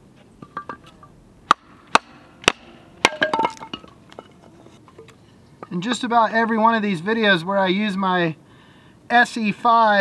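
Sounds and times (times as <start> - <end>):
firewood knocking together: 0.4 - 5.8.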